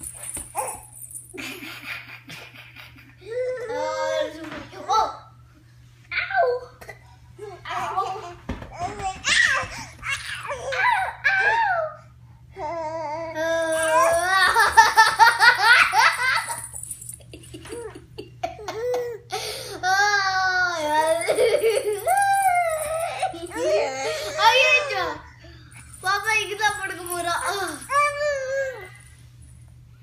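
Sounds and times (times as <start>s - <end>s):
children laughing: 1.4s - 3.7s, 14.2s - 19.1s, 19.9s - 25.2s.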